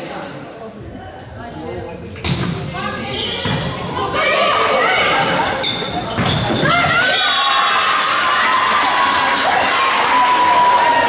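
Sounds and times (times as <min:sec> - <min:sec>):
players shouting and cheering: 0:03.6 - 0:11.0.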